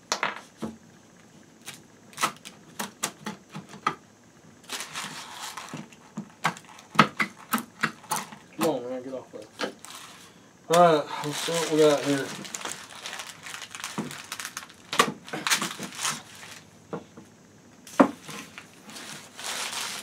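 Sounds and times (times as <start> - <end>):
scraping rustle: 4.6 - 6.9, 18.1 - 20.0
person speaking: 10.7 - 12.8.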